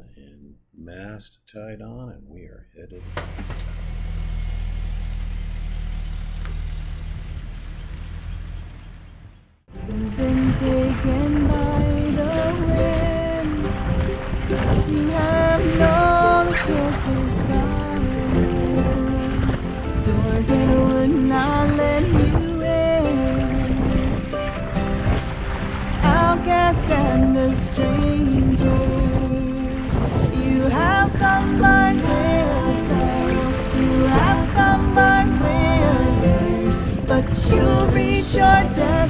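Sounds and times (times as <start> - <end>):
car engine humming: 3.0 - 39.0
person singing a song: 9.7 - 24.5, 26.0 - 39.0.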